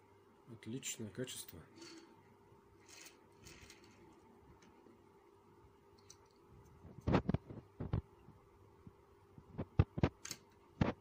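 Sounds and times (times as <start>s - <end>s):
toy car wheels rolling: 2.8s - 4.1s.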